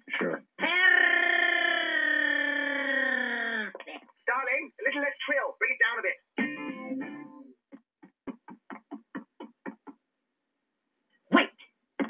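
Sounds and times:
guitar music through tv speaker: 6.4s - 7.6s.

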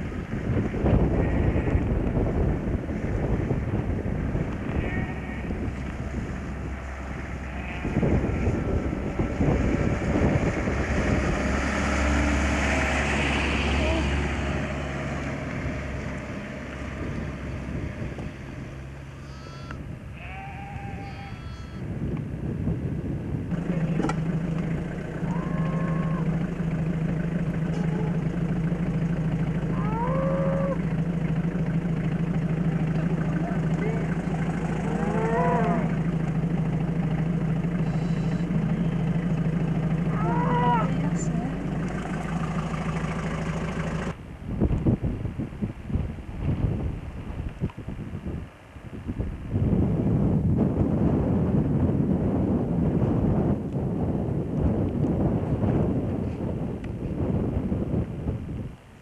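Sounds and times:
car engine idling: 0.0s - 20.3s, 23.0s - 47.8s
wind buffeting microphone: 0.0s - 59.0s
calf bawling: 7.4s - 8.6s, 33.1s - 36.4s, 37.7s - 38.7s.

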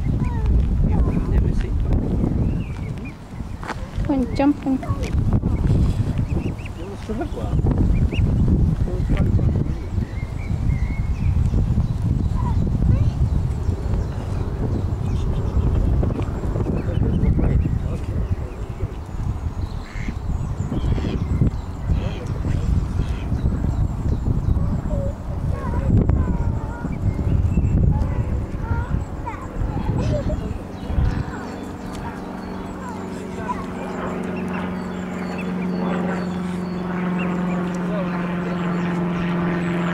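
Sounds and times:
cygnets peeping: 0.0s - 39.9s
wind buffeting microphone: 0.0s - 39.9s.

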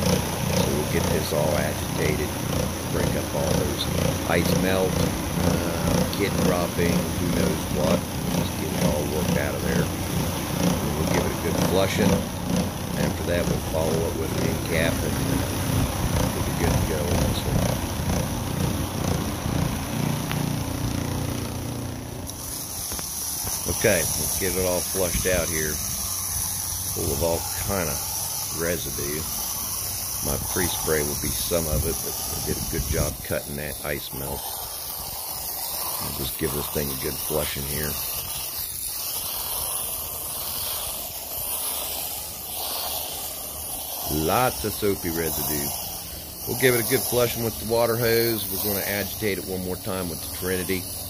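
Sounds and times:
carpet agitator motor droning: 0.0s - 51.0s
hose nozzle spraying water: 0.0s - 51.0s.

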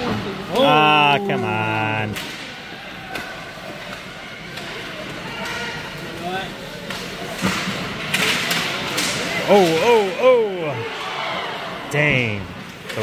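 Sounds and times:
faint crowd voices: 0.0s - 13.0s
hockey sticks and puck clacking: 2.0s - 10.0s.

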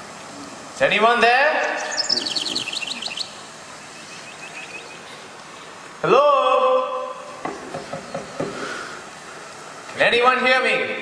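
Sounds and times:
bird chirping: 1.5s - 5.7s.

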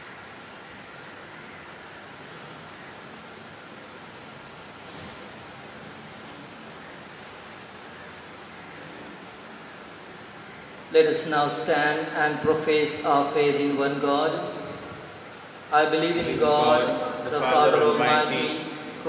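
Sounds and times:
steady hiss: 0.0s - 19.0s.

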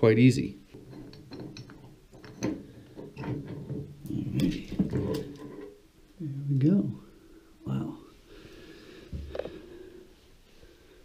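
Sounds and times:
metal valve clicks and scrapes: 0.7s - 3.9s.

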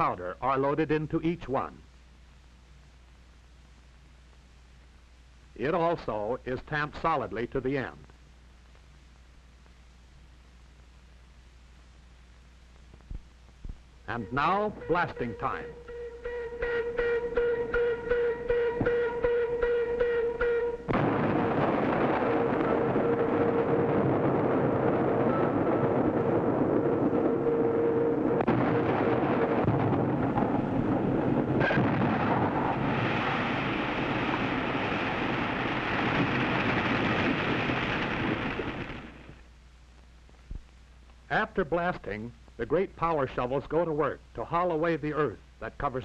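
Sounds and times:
explosion and falling rock roar: 20.9s - 27.1s, 28.4s - 39.4s.

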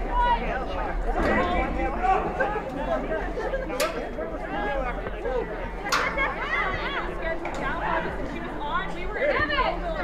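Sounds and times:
voices calling out and talking: 0.0s - 10.0s.

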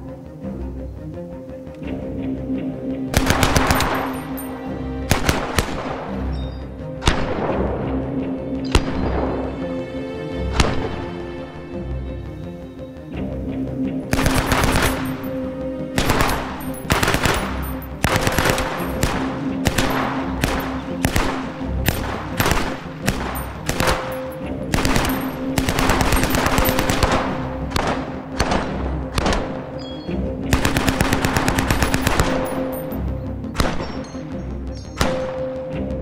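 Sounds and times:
submachine gun firing bursts: 3.2s - 4.1s, 16.0s - 29.4s, 30.5s - 32.8s.

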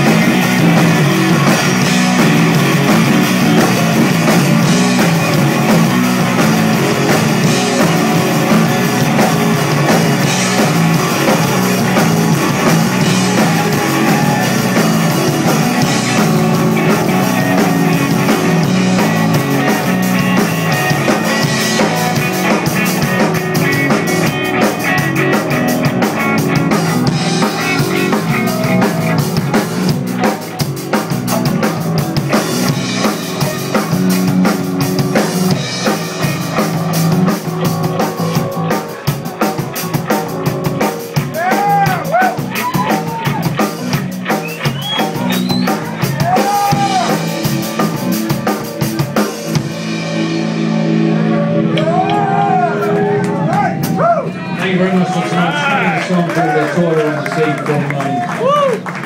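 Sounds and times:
drums and cymbals: 0.0s - 54.5s
live rock band playing: 0.0s - 59.0s.

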